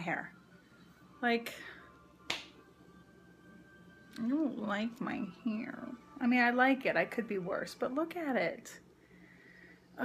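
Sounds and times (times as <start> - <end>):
faint steady tones: 0.0 - 10.0.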